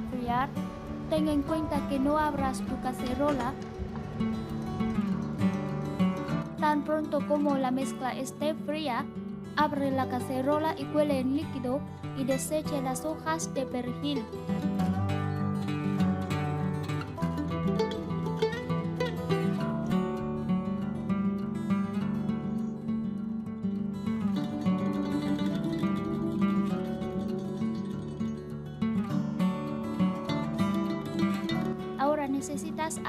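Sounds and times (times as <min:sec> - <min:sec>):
acoustic guitar playing: 0:00.0 - 0:33.0.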